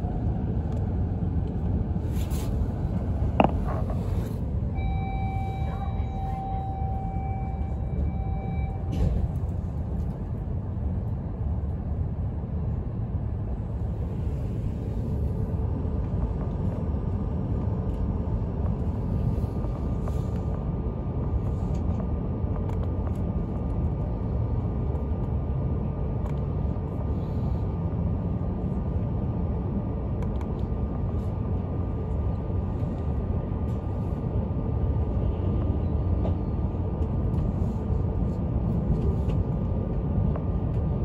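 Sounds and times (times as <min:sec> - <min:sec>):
train wheels rumbling on track: 0:27.0 - 0:41.0.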